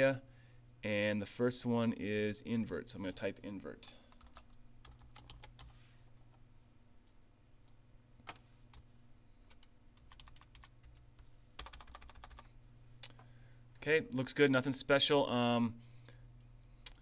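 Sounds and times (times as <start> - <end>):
steady low hum: 0.0 - 17.0
computer keyboard typing: 4.1 - 5.7, 8.2 - 8.8, 9.5 - 11.0, 11.6 - 12.5.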